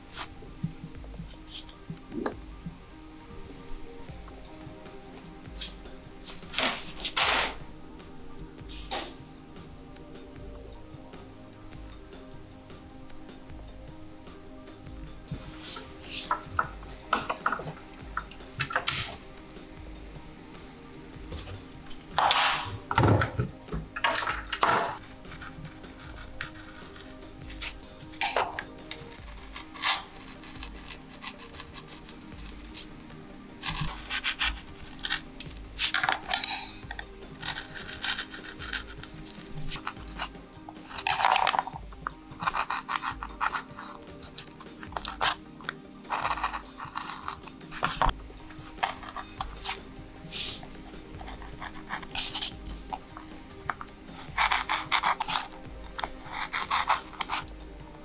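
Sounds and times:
faint background music: 0.0s - 58.0s
gouge scratching into wood: 25.0s - 32.9s, 33.6s - 36.5s, 37.3s - 57.5s.

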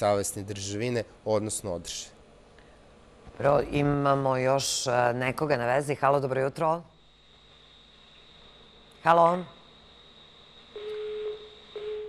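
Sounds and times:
telephone busy tone beeps: 10.7s - 12.0s.

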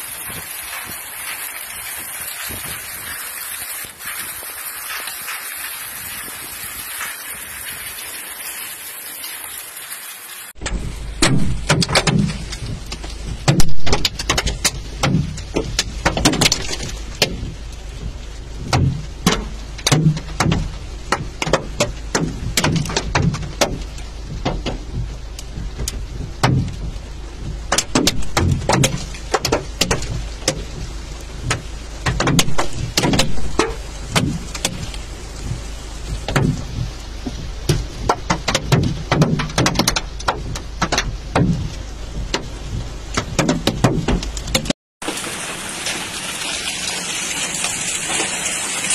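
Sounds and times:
hail pelting car roof: 0.0s - 48.9s
steady low rumble: 10.5s - 44.8s.

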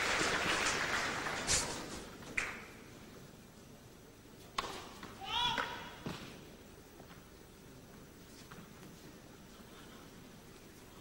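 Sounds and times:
person shouting call: 5.2s - 6.0s.

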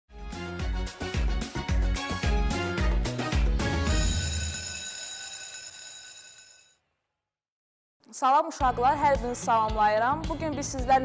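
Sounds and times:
intro jingle with held chord: 2.0s - 5.5s.

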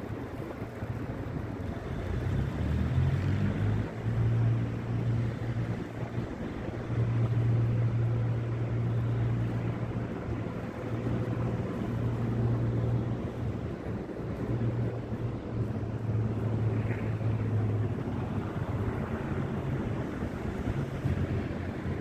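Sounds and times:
low city rumble: 0.0s - 22.0s
wind on microphone: 0.0s - 22.0s.

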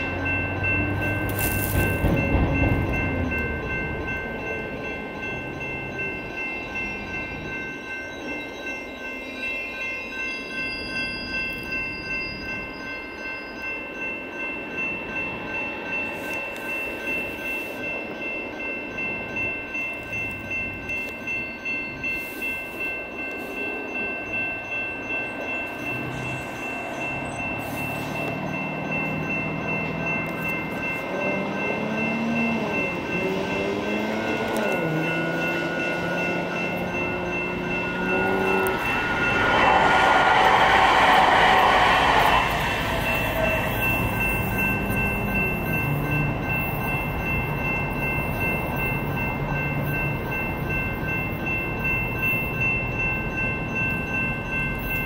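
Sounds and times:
railroad crossing bells ringing: 0.0s - 55.0s
vehicle passing loudly: 36.4s - 44.8s.

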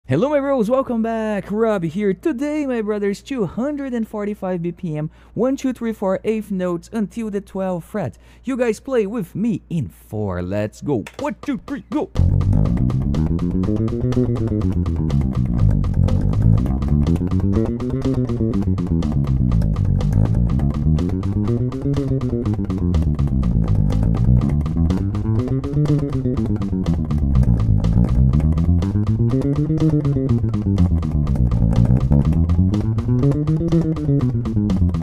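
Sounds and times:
electric bass finger exercise: 10.9s - 35.0s.

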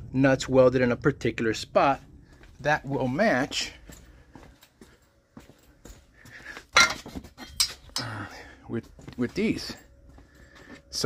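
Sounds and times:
metal items being handled: 6.6s - 8.3s.

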